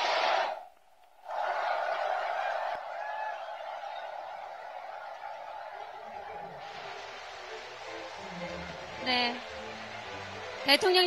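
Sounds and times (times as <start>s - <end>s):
large indoor crowd applauding: 1.2s - 11.0s.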